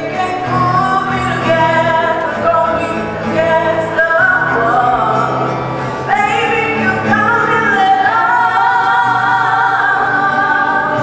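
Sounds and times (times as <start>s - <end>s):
women singing sustained notes: 0.0s - 11.0s.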